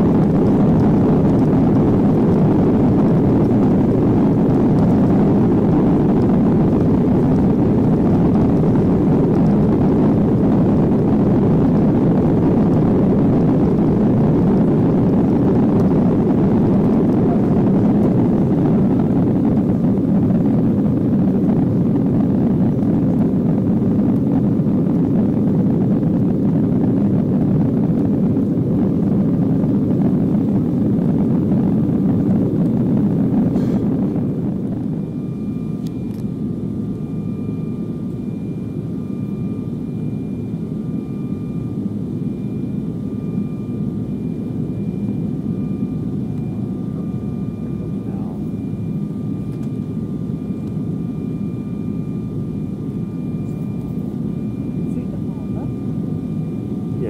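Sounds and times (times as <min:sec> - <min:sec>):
jet cabin rumble: 0:00.0 - 0:57.0.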